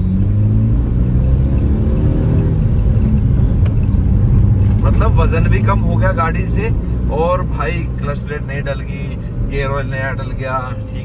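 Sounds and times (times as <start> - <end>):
car engine accelerating: 0.0 - 11.0.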